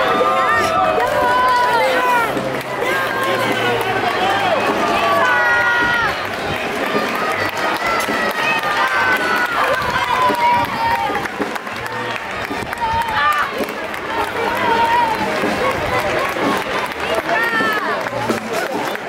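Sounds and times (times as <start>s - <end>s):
people calling out and shouting: 0.0s - 18.8s
crowd din: 0.0s - 19.0s.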